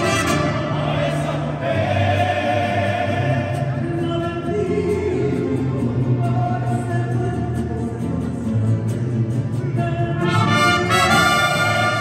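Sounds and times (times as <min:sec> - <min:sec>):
mariachi band playing: 0:00.0 - 0:12.0.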